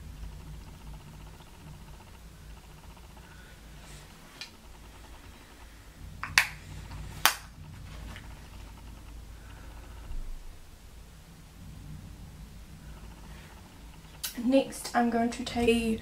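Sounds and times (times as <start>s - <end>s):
faint low room hum: 0.0s - 16.0s.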